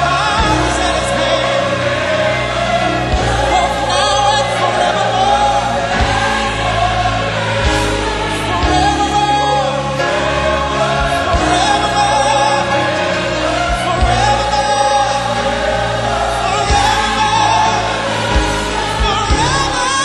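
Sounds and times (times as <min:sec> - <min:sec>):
choir singing: 0:00.0 - 0:20.0
instrumental backing with bass: 0:00.0 - 0:20.0.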